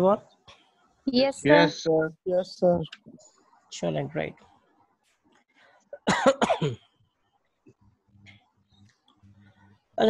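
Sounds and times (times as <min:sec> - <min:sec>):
person coughing: 0:06.0 - 0:06.8.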